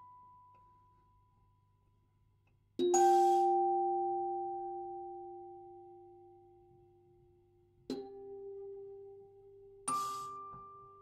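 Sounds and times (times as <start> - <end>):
music box note ringing: 2.8 - 5.6.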